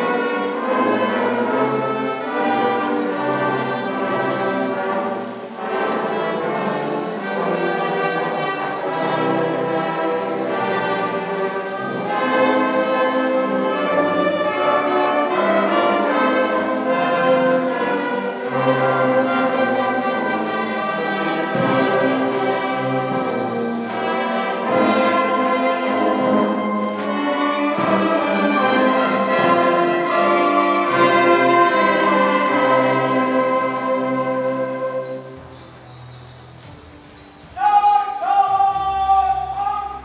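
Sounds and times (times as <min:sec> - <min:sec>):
ceremonial band playing chords: 0:00.0 - 0:40.0.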